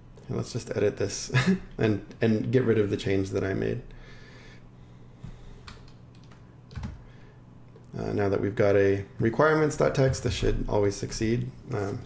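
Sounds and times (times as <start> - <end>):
faint low hum: 0.0 - 12.0
keyboard keystrokes: 5.7 - 7.0.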